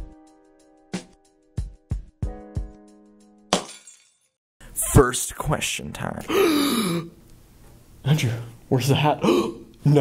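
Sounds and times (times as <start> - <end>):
person talking: 4.7 - 6.4.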